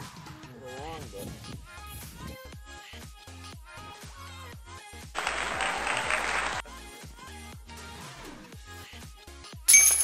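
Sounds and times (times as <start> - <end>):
burst of applause: 5.2 - 6.7.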